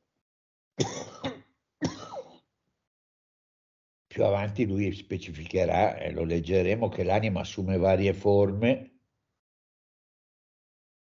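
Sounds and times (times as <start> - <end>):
man coughing: 0.8 - 2.4.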